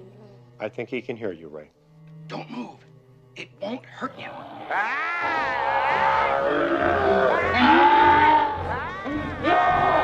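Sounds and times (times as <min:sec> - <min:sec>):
shrill wavering ghostly shrieks: 0:04.8 - 0:10.0.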